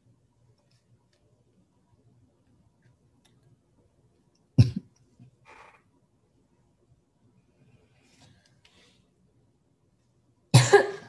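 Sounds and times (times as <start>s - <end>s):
woman coughing: 4.6s - 4.9s, 10.6s - 11.0s.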